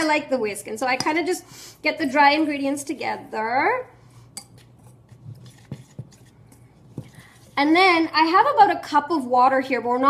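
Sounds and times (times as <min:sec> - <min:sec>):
whisk scraping metal bowl: 0:04.3 - 0:08.4.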